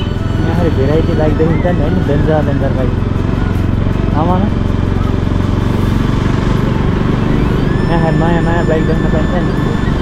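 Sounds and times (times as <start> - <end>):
motorcycle engine at low revs: 0.0 - 10.0.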